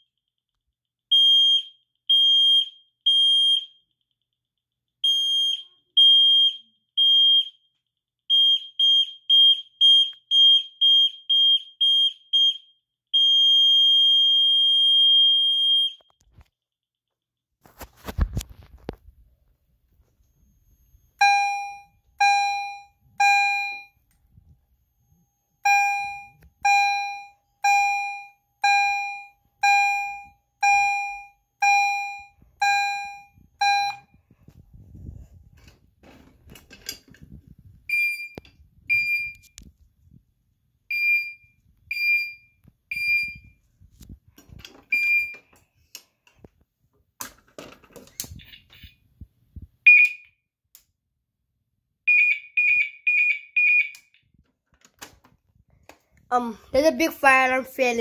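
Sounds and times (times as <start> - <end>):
fire alarm chime: 1.1 - 3.8, 8.3 - 16.2, 20.4 - 24.0, 25.1 - 34.2, 40.9 - 43.5, 49.9 - 50.3, 52.1 - 54.0
higher-pitched alarm chime: 25.1 - 34.1.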